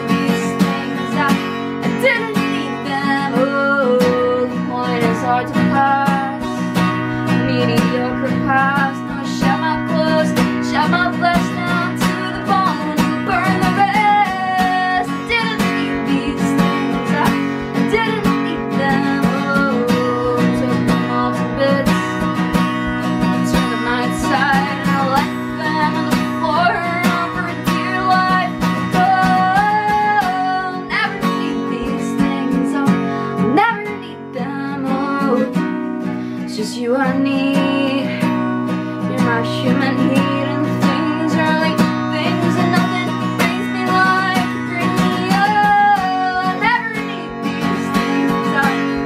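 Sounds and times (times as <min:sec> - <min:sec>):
acoustic guitar strumming: 0:00.0 - 0:49.0
woman singing: 0:00.0 - 0:49.0.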